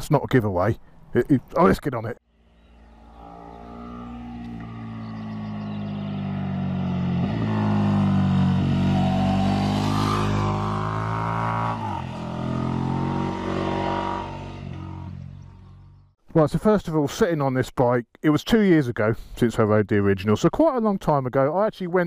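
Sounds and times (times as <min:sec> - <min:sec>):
motorcycle engine passing by: 0:02.3 - 0:16.1.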